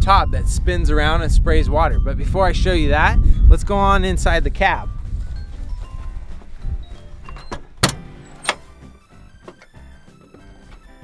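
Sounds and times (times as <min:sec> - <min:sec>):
low rumble of wind: 0:00.0 - 0:08.0
soft background music: 0:00.2 - 0:11.0.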